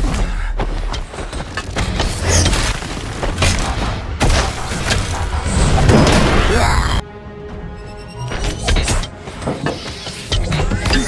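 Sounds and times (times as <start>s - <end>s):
dramatic orchestral score: 0.0s - 11.0s.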